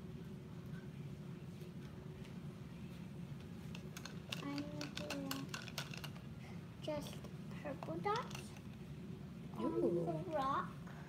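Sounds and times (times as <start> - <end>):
steady low hum: 0.0 - 11.0
paintbrushes clattering in plastic cup: 3.7 - 6.2.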